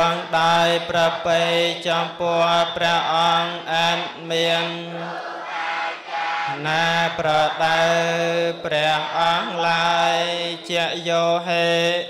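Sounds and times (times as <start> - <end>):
melodic chanting: 0.0 - 12.0.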